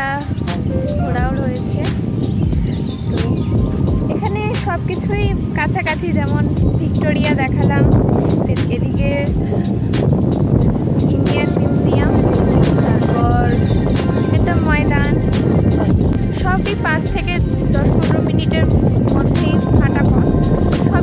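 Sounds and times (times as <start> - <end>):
woman talking: 0.0 - 2.1, 4.0 - 9.4, 11.1 - 13.6, 14.3 - 21.0
background music: 0.0 - 21.0
heavy low rumble: 0.0 - 21.0.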